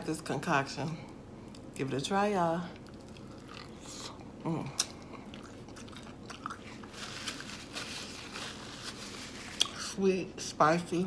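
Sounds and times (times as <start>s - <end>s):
chewing crunchy fried food: 2.7s - 9.9s.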